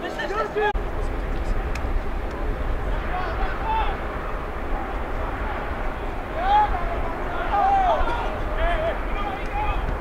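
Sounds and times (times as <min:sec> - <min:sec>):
steady low rumble: 0:00.8 - 0:10.0
distant shouts of players: 0:04.7 - 0:10.0.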